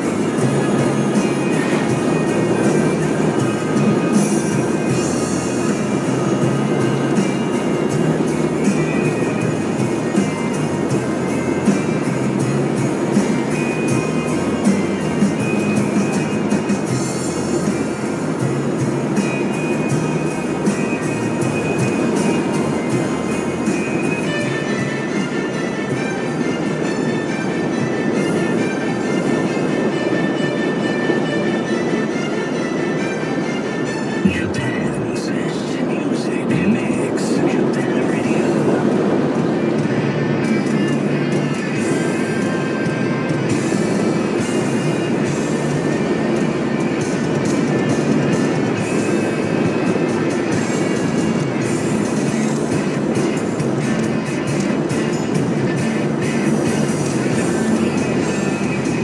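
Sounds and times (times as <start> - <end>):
car road noise: 0.0 - 59.0
music on car stereo: 0.0 - 59.0.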